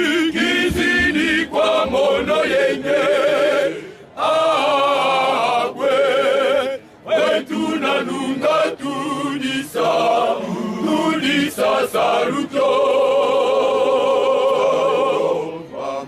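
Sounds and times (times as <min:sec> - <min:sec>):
male choir singing a cappella: 0:00.0 - 0:16.0.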